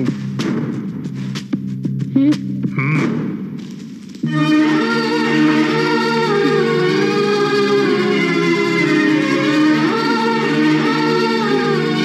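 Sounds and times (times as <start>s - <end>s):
low musical drone: 4.3s - 12.0s.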